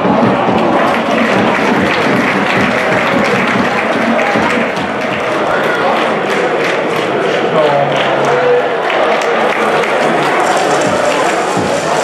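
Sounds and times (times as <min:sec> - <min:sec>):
crowd chanting: 0:00.0 - 0:12.0
fans clapping: 0:00.0 - 0:12.0.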